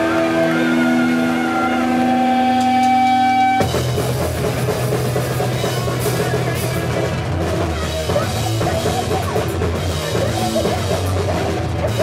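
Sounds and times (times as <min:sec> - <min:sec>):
electric guitar amplifier drone: 0:00.0 - 0:12.0.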